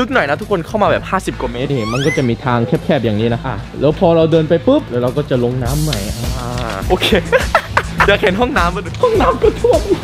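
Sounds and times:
man talking: 0.0s - 4.0s, 5.6s - 7.4s
short high-pitched squeak: 1.8s - 2.4s.

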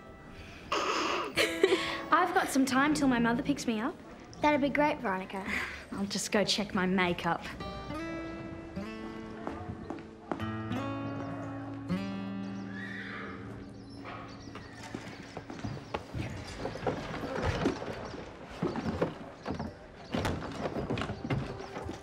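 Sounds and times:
horse neighing: 12.7s - 13.5s
knocks and clatter: 14.6s - 22.0s.

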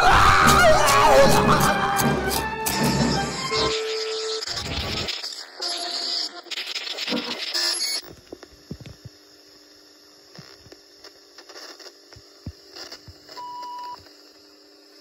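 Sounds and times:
tape hiss and hum: 0.0s - 15.0s.

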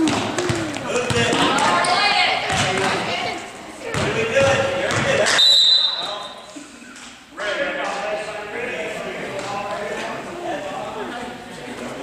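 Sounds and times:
basketball bouncing on wooden floor: 0.0s - 1.5s, 2.5s - 2.9s, 3.9s - 5.2s
echoing voices: 0.0s - 5.4s
referee whistle blast: 5.4s - 6.4s.

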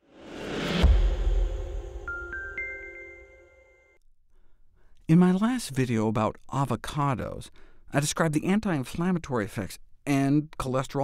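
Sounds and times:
chiming glockenspiel jingle: 2.1s - 4.0s.

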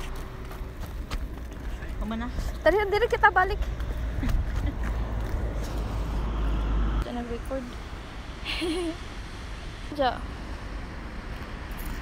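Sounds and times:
wind buffeting microphone: 0.0s - 8.4s.

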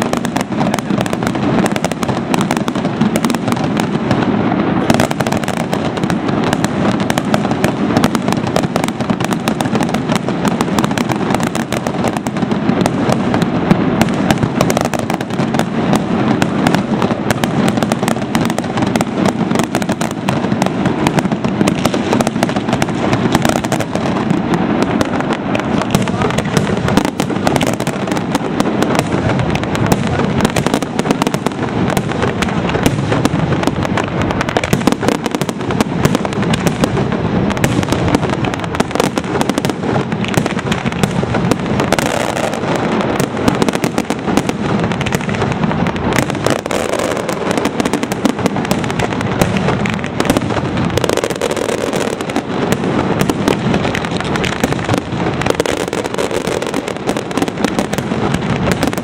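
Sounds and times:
fireworks bangs and crackling: 0.0s - 59.0s.

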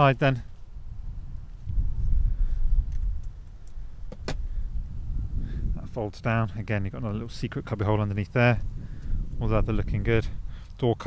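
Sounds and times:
microphone handling rumble: 0.0s - 11.0s.

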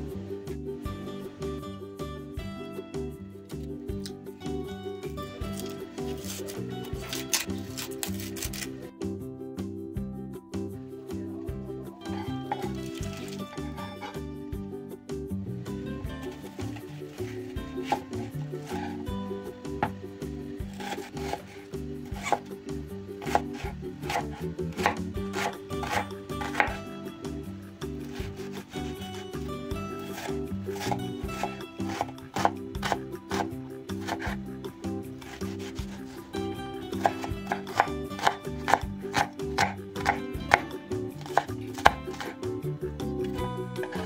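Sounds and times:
background music: 0.0s - 44.0s
knife chopping onion on board: 5.5s - 8.7s, 16.4s - 19.0s, 20.7s - 22.5s, 23.2s - 26.9s, 28.0s - 34.4s, 35.2s - 42.5s.

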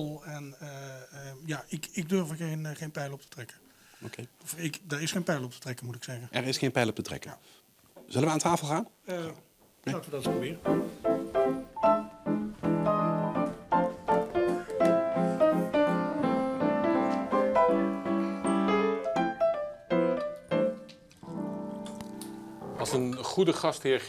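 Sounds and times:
upright piano playing: 10.0s - 23.8s.

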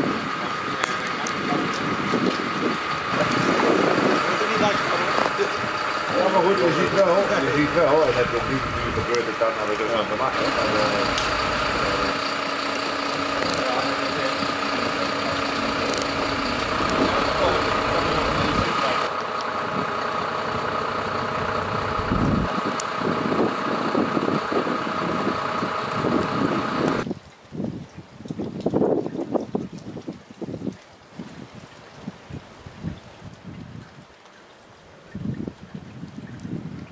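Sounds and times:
wind buffeting microphone: 0.0s - 9.5s, 10.2s - 34.1s, 35.0s - 36.9s
fire engine idling: 0.0s - 27.1s.

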